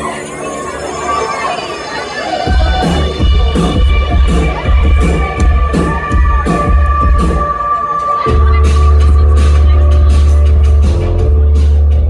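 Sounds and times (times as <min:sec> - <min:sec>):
crowd cheering: 0:00.0 - 0:09.9
electronic bass beat: 0:02.4 - 0:12.0.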